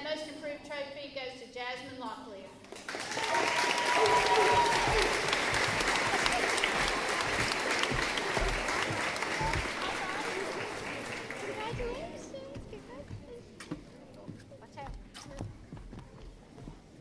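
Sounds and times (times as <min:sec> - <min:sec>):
audience applause: 0:02.8 - 0:12.4.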